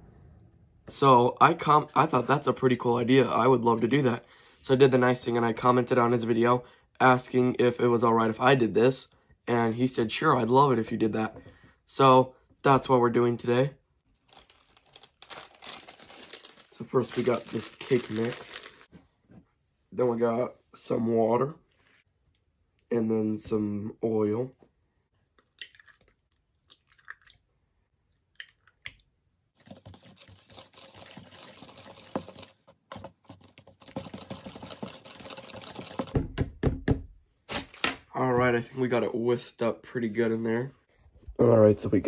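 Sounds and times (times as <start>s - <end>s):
plastic bag crinkling: 14.2s - 18.9s, 29.6s - 36.1s
egg cracking over bowl: 25.4s - 27.4s
hand whisk beating batter: 29.6s - 36.2s.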